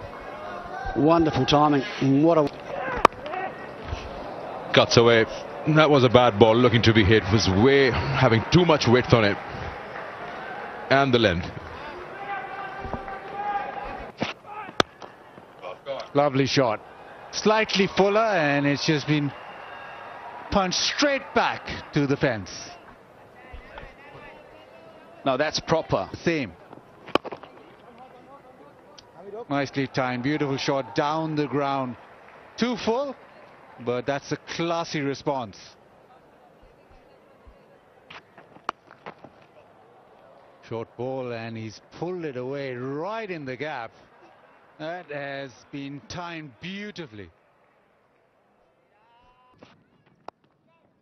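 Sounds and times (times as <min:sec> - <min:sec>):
stadium crowd murmur: 0:00.0 - 0:51.0
cricket bat striking ball: 0:02.9 - 0:03.4, 0:14.2 - 0:15.5, 0:27.1 - 0:27.6.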